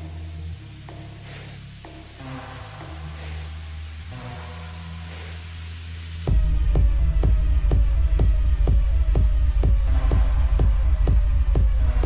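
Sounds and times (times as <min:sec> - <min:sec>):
soft hiss swells: 0:00.0 - 0:06.5
sustained low bass notes: 0:00.0 - 0:12.0.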